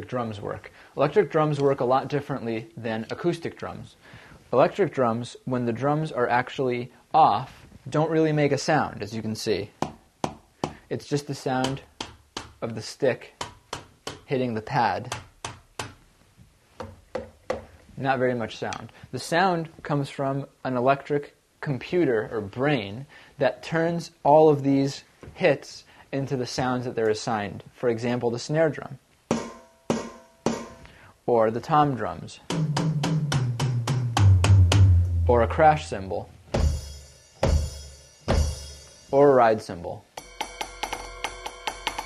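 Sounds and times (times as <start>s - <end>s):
drumsticks tapping rubber pads: 9.8s - 10.9s, 11.6s - 12.8s, 13.4s - 14.3s, 16.8s - 17.7s
electronic drum tom fill: 29.3s - 30.9s, 32.5s - 35.8s, 36.5s - 39.2s.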